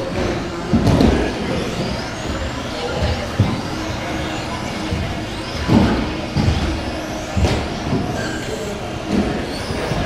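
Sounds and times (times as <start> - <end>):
rc car motors whining: 0.0 - 10.0.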